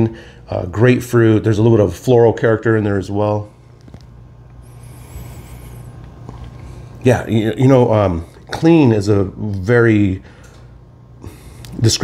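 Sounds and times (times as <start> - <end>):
low hum: 0.0 - 12.0
faint sniffing: 4.6 - 7.0.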